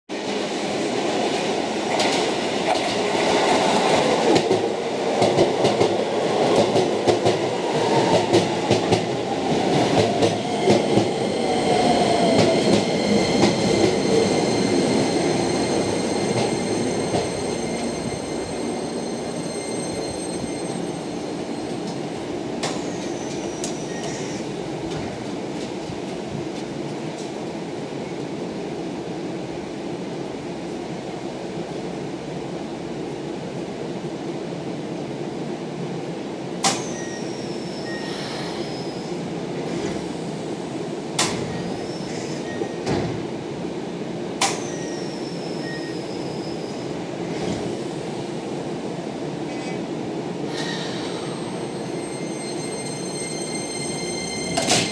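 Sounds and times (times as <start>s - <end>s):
standing train hum: 0.1s - 54.9s.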